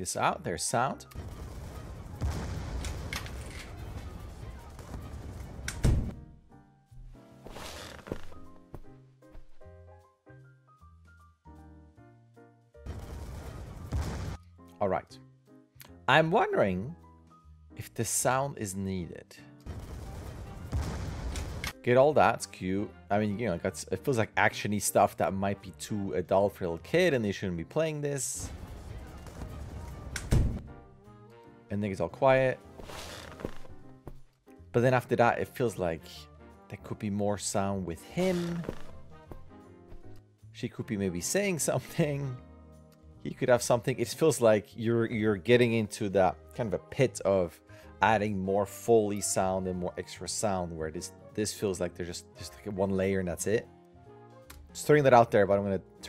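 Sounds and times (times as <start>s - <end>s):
video game sound effects: 38.3s - 38.9s.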